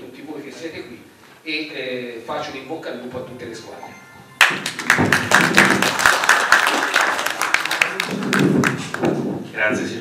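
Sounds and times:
audience applauding: 4.4s - 9.1s.

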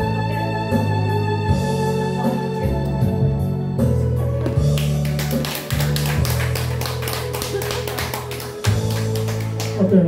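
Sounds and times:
pop ballad backing track: 0.0s - 9.8s.

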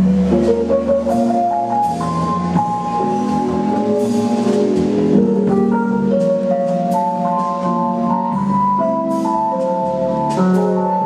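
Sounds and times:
double bass line: 0.0s - 11.0s
drum kit with cymbal strikes: 0.0s - 11.0s
jazz melody of held notes: 0.0s - 11.0s.

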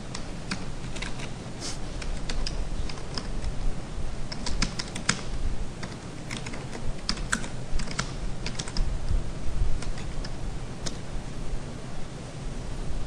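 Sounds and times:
computer keyboard typing: 0.0s - 1.4s, 2.0s - 3.5s, 4.3s - 8.9s, 9.8s - 11.0s.

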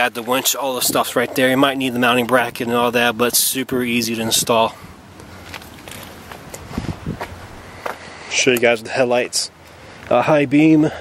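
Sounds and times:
soft footsteps on pavement: 4.0s - 9.2s.

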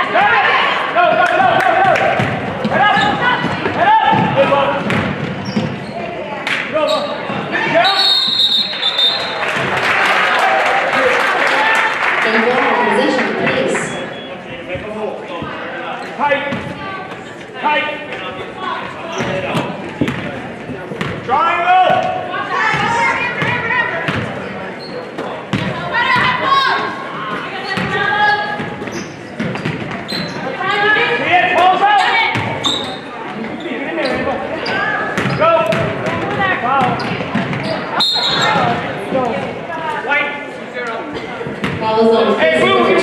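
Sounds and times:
people shouting in a gym: 0.0s - 4.9s, 21.3s - 24.4s, 25.3s - 28.6s, 30.1s - 33.2s, 33.9s - 39.4s
shrill referee whistle: 7.8s - 9.4s, 38.0s - 38.6s.

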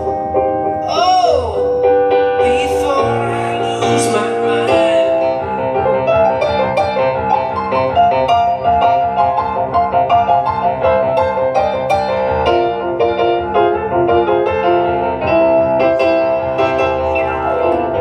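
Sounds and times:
piano playing quick notes and chords: 0.0s - 18.0s.

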